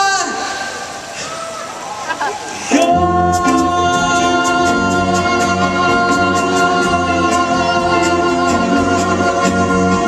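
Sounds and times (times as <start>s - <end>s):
live band with string orchestra: 2.1s - 10.0s.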